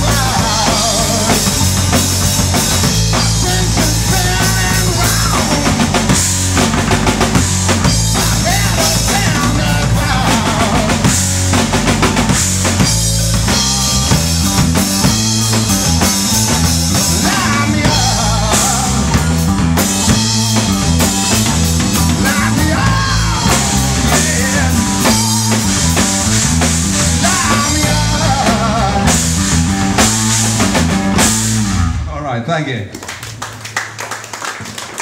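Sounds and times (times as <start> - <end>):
man singing: 0.0 - 1.9, 2.9 - 6.2, 8.0 - 11.3, 16.9 - 21.0, 21.9 - 26.2, 27.0 - 29.4
live rock band playing: 0.0 - 32.2.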